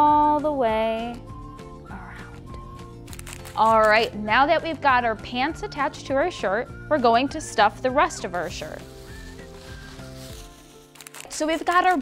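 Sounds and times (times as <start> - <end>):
soft background music: 0.0 - 12.0
plastic bags rustling: 3.2 - 4.1, 8.3 - 12.0.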